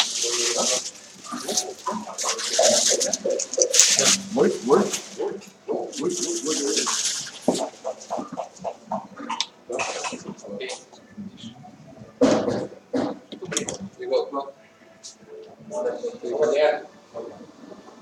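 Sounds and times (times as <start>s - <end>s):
breathy hissing: 0.0s - 10.8s
people talking indistinctly: 0.0s - 18.0s.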